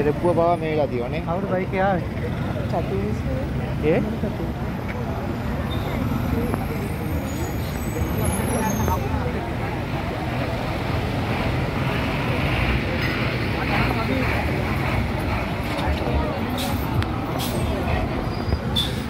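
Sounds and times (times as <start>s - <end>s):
road traffic passing: 0.0s - 19.0s.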